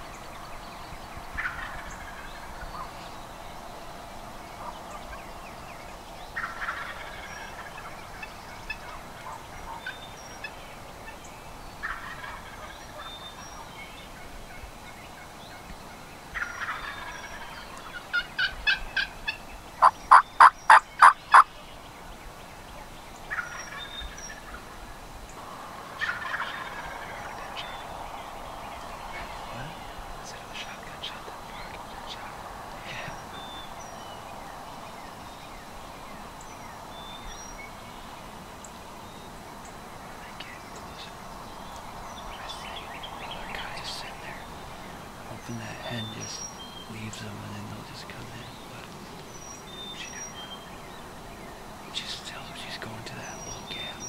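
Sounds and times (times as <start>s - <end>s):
turkey gobbling: 1.4s - 2.4s, 6.4s - 8.0s, 11.8s - 13.1s, 16.4s - 21.5s, 23.3s - 24.7s, 25.8s - 28.3s
turkey yelps: 19.8s - 21.5s, 26.0s - 27.0s.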